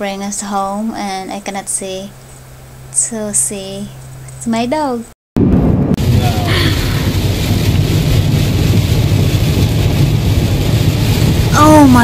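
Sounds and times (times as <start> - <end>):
heavy rain on car roof: 6.0 - 12.0.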